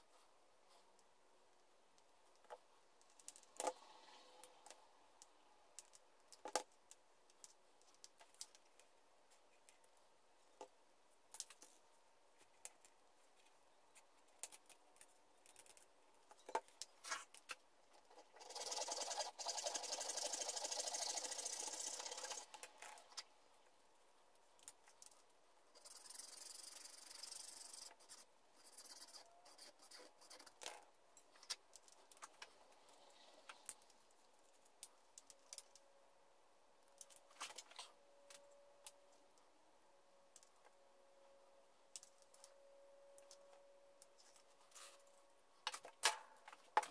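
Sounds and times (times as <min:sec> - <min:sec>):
faint steady hum: 0:00.0 - 0:46.9
faint clicks of small parts handled: 0:04.4 - 0:18.2, 0:24.3 - 0:25.4, 0:29.9 - 0:35.9, 0:36.8 - 0:39.5, 0:40.3 - 0:40.8, 0:41.9 - 0:46.9.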